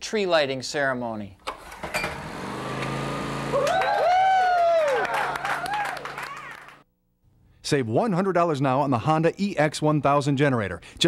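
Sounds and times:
recoil cord pull-start: 1.4 - 3.7
generator engine humming: 1.6 - 4.1, 4.9 - 6.8.

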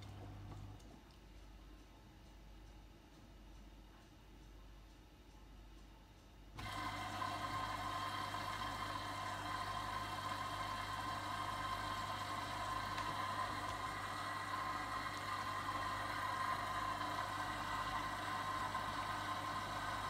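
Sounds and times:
washing machine motor hum: 0.0 - 1.1, 6.6 - 20.0.

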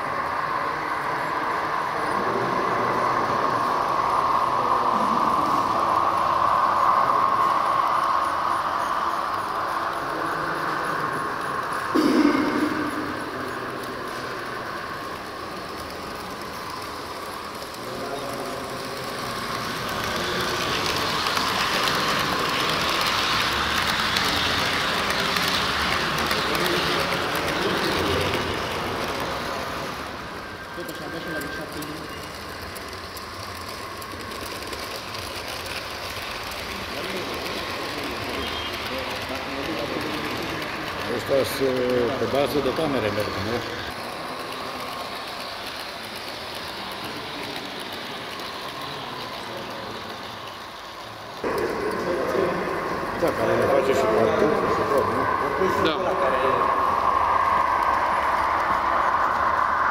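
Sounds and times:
model train motors humming: 0.0 - 59.9
model train wheels on track: 0.0 - 59.9.

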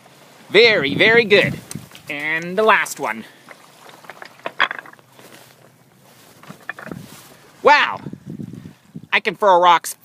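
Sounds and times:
faint outdoor hiss: 0.0 - 10.0
clothing rustle: 3.5 - 7.6.

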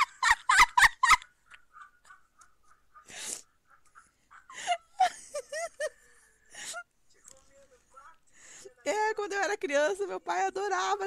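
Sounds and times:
woman laughing: 0.0 - 6.8.

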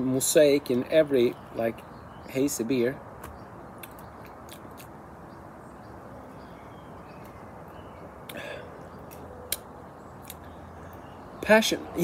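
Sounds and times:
lip smacks and mouth clicks: 3.8 - 5.0, 9.1 - 10.5.

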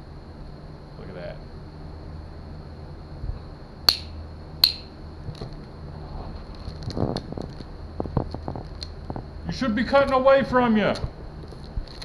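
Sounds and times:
steady low hum: 0.0 - 12.0
plastic wrapping crinkling: 6.4 - 8.8.

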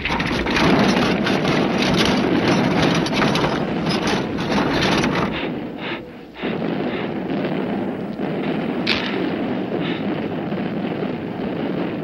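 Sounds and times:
loud steady rumbling: 0.0 - 12.0
sharp crack: 0.0 - 12.0.

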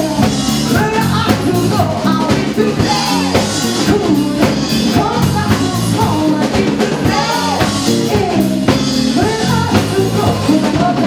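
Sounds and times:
bass guitar: 0.0 - 11.0
drum kit: 0.0 - 11.0
electric guitar: 0.0 - 11.0
person singing: 0.0 - 11.0.

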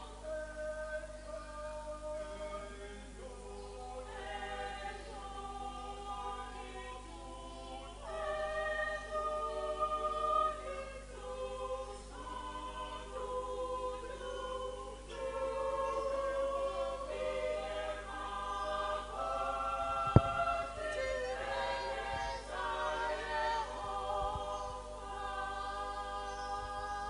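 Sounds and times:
congregation singing: 0.0 - 27.0
sharp knock: 20.1 - 20.4.

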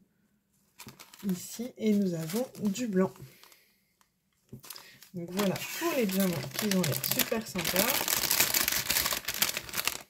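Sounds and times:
plastic bag crinkling: 0.8 - 3.7, 4.5 - 10.0.

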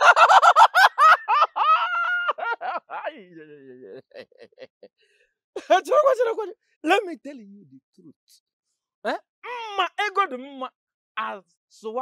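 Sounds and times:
man laughing loudly: 0.0 - 4.9.

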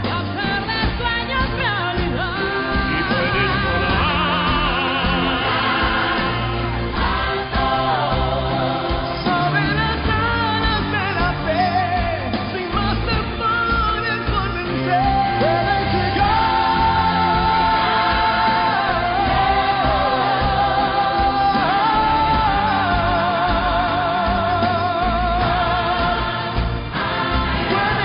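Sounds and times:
solo singer with accompaniment: 0.0 - 6.5, 7.9 - 27.0.

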